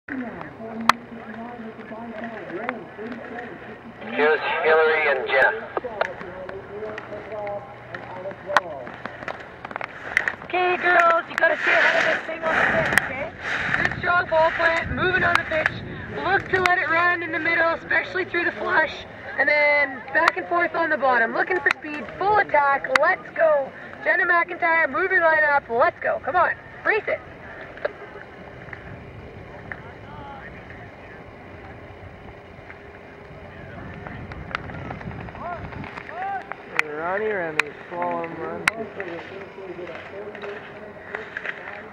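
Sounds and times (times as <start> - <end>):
faint voices: 0.1 - 41.9
wind rumble on microphone: 12.2 - 16.9, 28.3 - 36.1.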